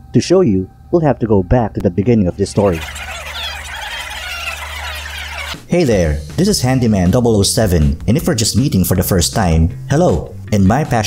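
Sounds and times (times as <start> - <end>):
rewind squeals: 2.4 - 5.7.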